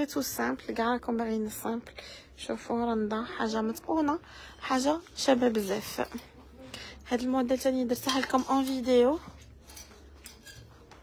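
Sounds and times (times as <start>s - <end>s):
woman's voice: 0.0s - 9.4s
garments rustling on hangers: 3.1s - 11.0s.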